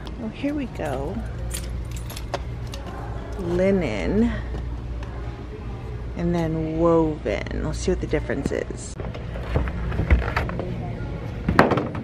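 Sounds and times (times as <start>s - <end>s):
steady low hum: 0.0s - 12.0s
metallic jingling: 0.5s - 3.4s.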